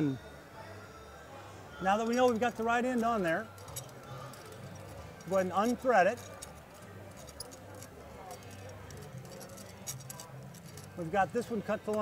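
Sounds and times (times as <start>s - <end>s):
metallic ticks and clicks: 2.1s - 11.1s.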